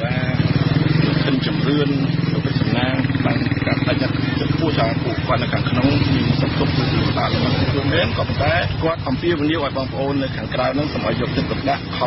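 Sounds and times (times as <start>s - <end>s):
steady low buzz: 0.0s - 12.0s.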